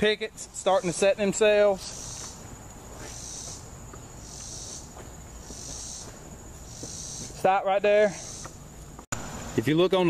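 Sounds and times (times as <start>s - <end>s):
insects buzzing chirp: 0.0s - 10.0s.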